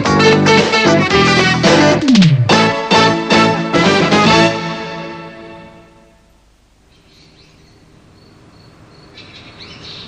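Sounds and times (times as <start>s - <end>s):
music sting: 0.7s - 5.2s
birds chirping: 6.8s - 10.0s.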